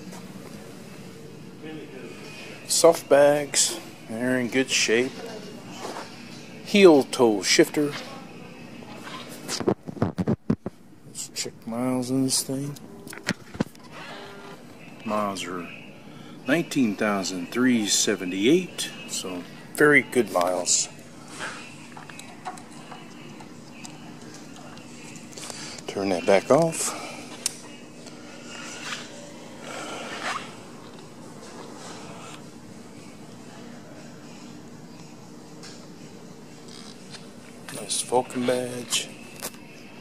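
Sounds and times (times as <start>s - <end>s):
faint hum: 0.0s - 40.0s.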